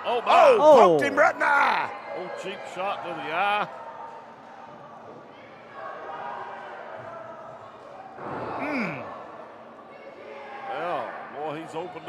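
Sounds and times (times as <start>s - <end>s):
murmur of crowd voices echoing: 0.0s - 12.0s
man shouting: 0.3s - 1.9s.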